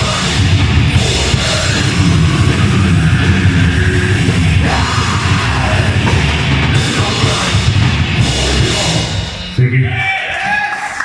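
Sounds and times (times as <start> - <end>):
heavy metal band playing live: 0.0 - 10.2.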